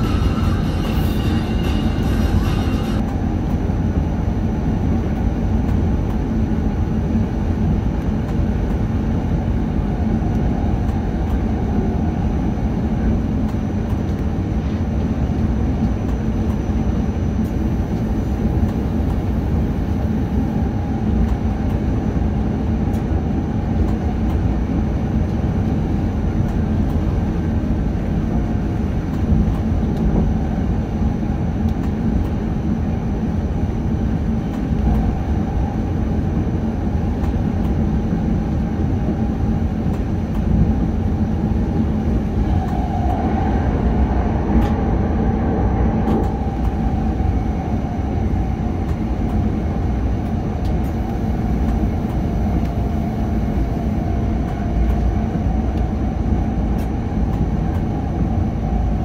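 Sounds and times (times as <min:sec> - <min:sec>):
faint traction motor whine: 0:00.0 - 0:59.0
train wheels rumbling on rails: 0:00.0 - 0:59.0.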